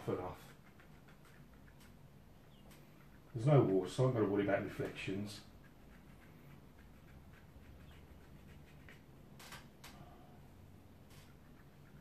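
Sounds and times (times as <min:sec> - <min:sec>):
brush ticking on wet paper: 0:00.0 - 0:09.3, 0:11.1 - 0:12.0.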